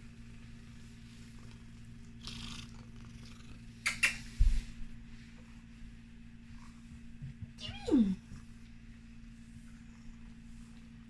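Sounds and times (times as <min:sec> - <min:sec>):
cat purring: 0:00.2 - 0:03.8.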